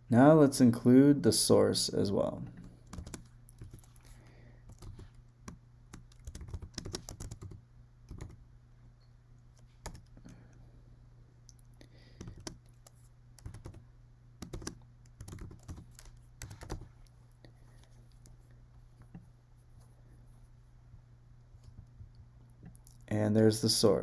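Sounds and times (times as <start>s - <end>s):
faint low hum: 0.0s - 24.0s
typing on computer keyboard: 2.8s - 4.0s, 4.7s - 8.4s, 9.6s - 10.1s, 12.2s - 13.8s, 14.4s - 16.9s.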